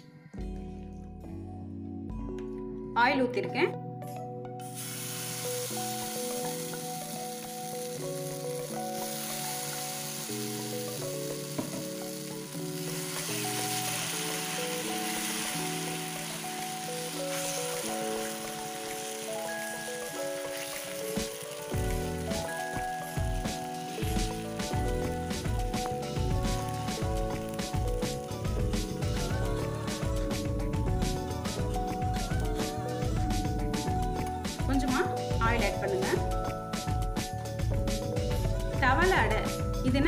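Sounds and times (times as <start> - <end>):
background music with beat: 0.0 - 3.0, 3.8 - 40.0
batter sizzling in hot oil: 4.6 - 34.6.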